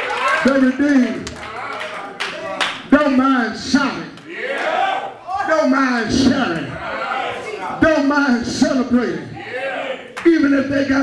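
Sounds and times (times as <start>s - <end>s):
man preaching into microphone: 0.3s - 2.2s, 2.8s - 4.2s, 5.2s - 11.0s
sharp hand claps: 1.2s - 2.8s.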